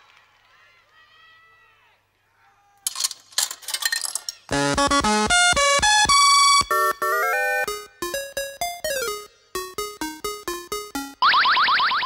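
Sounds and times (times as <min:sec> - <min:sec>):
music: 0:04.5 - 0:11.2.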